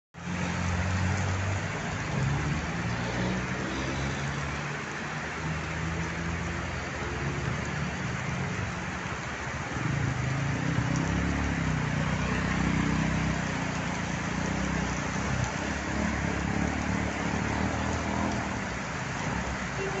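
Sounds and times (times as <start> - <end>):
cars driving through flooded street: 0.2 - 20.0
heavy rain pouring: 0.2 - 20.0.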